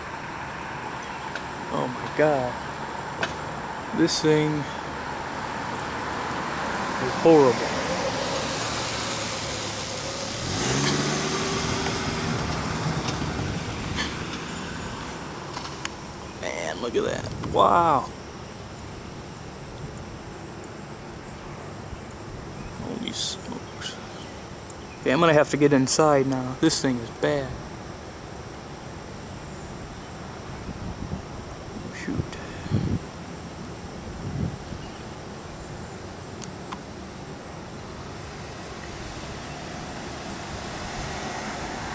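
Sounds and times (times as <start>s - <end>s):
passing vehicle engine hum: 0.0s - 17.3s, 32.2s - 41.9s
high drone of insects: 0.0s - 41.9s
steady outdoor hiss: 0.0s - 41.9s
wind rushing over microphone: 10.3s - 18.1s, 30.5s - 33.2s, 34.0s - 34.9s, 39.0s - 41.9s.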